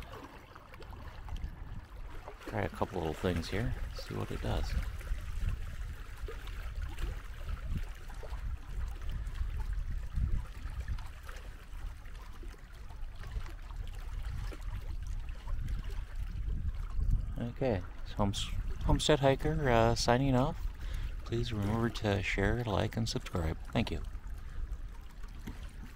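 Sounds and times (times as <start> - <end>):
waves lapping and splashing: 0.0 - 25.9
wind buffeting microphone: 0.8 - 25.9.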